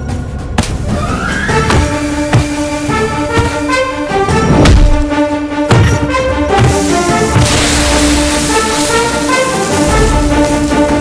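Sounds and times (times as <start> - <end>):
action film score: 0.0 - 11.0
hiss of spraying dirt: 6.6 - 11.0.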